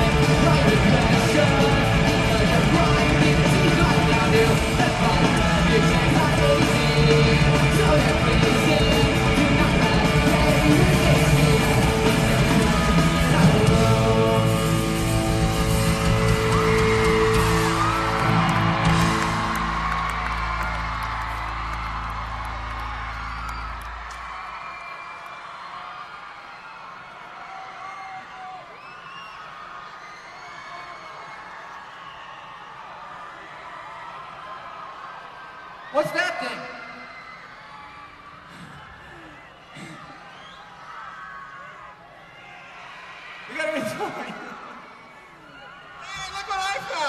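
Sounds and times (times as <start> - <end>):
crowd cheering and whooping: 0.0 - 47.0.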